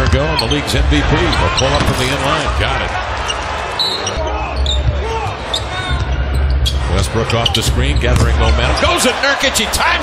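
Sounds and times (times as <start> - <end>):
basketball bouncing on court: 0.0 - 0.6
crowd noise and voices: 0.0 - 10.0.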